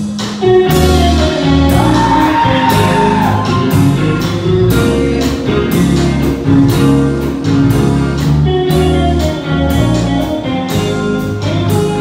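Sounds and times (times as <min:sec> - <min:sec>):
bass guitar: 0:00.0 - 0:12.0
drum kit beat: 0:00.0 - 0:12.0
electric guitars: 0:00.0 - 0:12.0.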